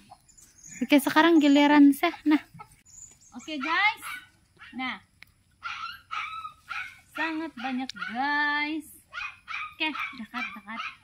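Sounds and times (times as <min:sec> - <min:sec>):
dog barking: 0:03.6 - 0:04.8, 0:05.6 - 0:08.3, 0:09.1 - 0:11.0.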